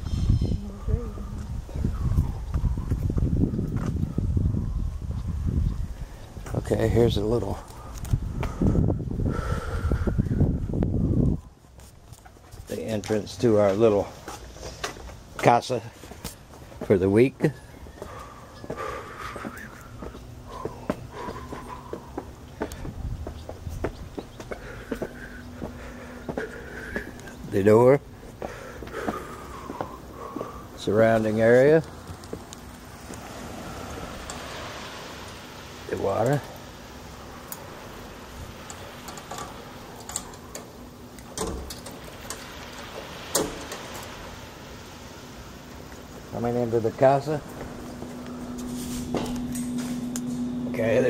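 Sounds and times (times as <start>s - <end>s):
footsteps on concrete stairs: 17.8s - 27.4s, 28.2s - 30.6s.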